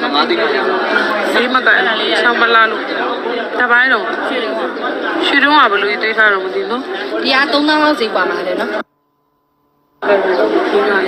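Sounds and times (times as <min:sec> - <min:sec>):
chatter of voices: 0:00.0 - 0:09.0, 0:09.6 - 0:11.0.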